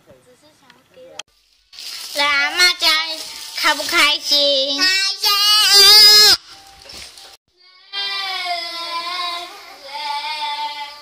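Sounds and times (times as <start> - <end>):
girl singing a wavering note: 7.6 - 11.0.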